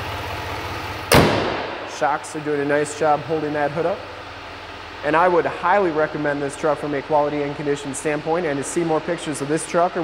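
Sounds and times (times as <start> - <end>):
diesel engine idling: 0.0 - 10.0
car hood slamming: 1.1 - 1.9.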